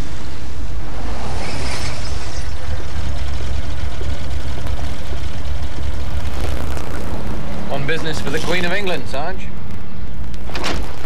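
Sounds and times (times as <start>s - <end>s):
car engine running: 2.4s - 11.0s.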